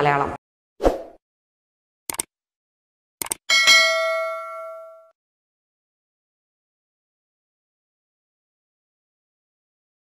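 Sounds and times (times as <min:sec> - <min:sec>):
bell chime: 0:03.5 - 0:05.2.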